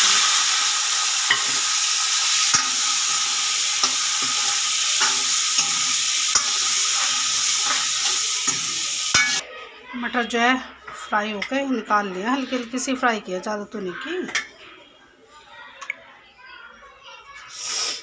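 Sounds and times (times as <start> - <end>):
peas sizzling in hot oil: 0.0 - 9.4
metal ladle clinking against pan: 3.8 - 9.4.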